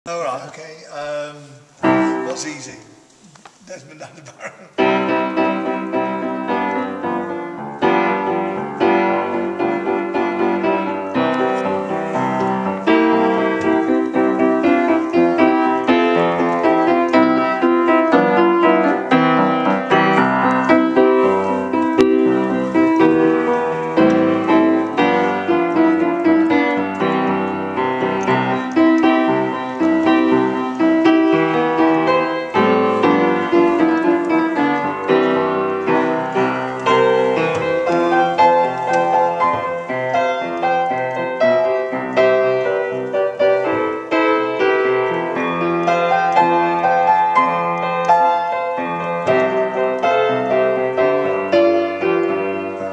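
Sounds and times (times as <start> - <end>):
upright piano playing: 0.1 - 52.9.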